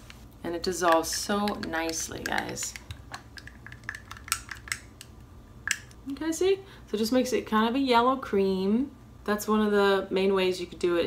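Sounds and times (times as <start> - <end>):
wooden stick clicking in glass jar: 0.8 - 5.1.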